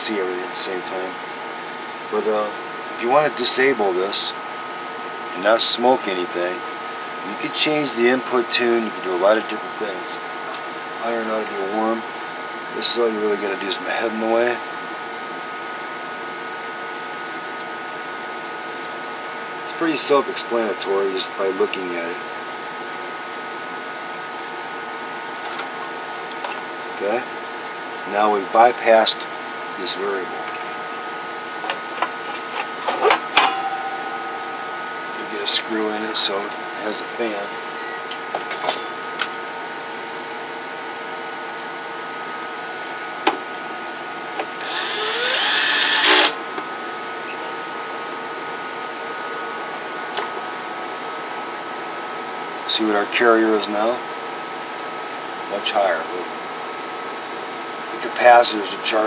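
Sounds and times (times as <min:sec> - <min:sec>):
electric fan whirring: 0:00.0 - 0:52.5.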